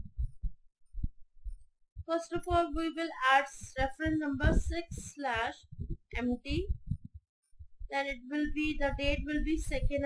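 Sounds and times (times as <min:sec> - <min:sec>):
dull low thumps: 0:00.0 - 0:10.0.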